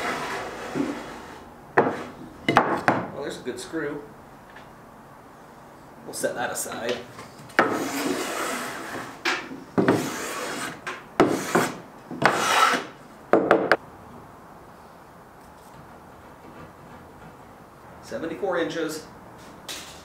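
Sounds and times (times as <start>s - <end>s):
wooden boards scraping on wood: 0.0s - 2.3s, 7.6s - 13.0s.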